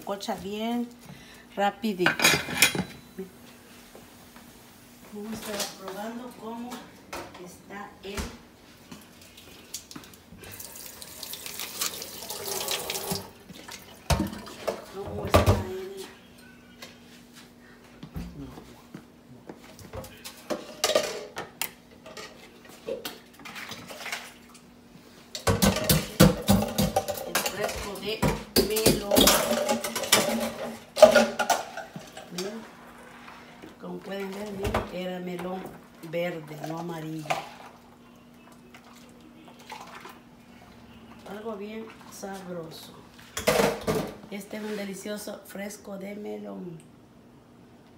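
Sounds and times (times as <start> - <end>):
water pouring into sink: 10.5 - 14.5.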